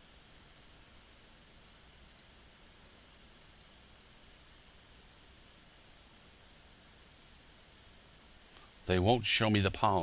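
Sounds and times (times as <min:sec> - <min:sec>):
low room hiss: 0:00.0 - 0:10.0
computer mouse clicks: 0:01.5 - 0:02.4, 0:03.5 - 0:04.6, 0:05.4 - 0:05.8, 0:07.3 - 0:07.6.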